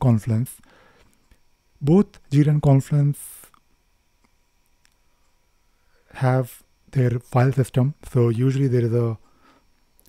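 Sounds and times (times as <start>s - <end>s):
man speaking: 0.0s - 0.6s, 1.8s - 3.6s, 6.2s - 9.2s.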